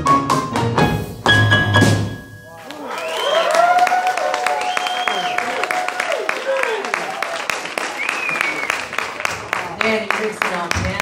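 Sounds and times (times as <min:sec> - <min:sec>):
jazz combo playing: 0:00.0 - 0:02.7
audience applauding: 0:02.5 - 0:11.0.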